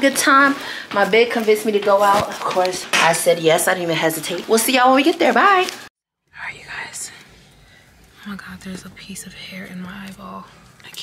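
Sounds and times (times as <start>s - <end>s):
faint whispering: 6.3s - 11.0s.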